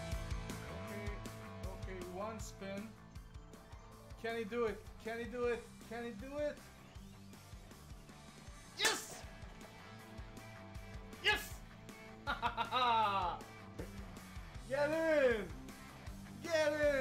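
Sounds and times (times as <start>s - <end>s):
rock music: 0.0s - 17.0s
man crying out: 8.8s - 9.2s, 11.2s - 11.6s, 12.6s - 13.4s
man yelling: 8.8s - 9.3s, 11.2s - 11.6s, 16.4s - 17.0s
man laughing: 12.2s - 14.1s.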